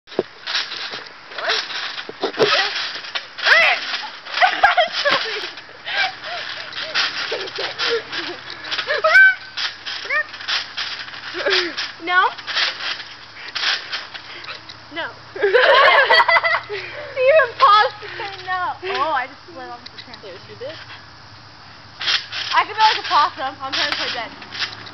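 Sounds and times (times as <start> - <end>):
trampoline bounce thumps: 0.1 - 16.6, 21.9 - 24.9
girls calling out and laughing: 3.4 - 10.5, 14.4 - 20.8, 22.5 - 24.3.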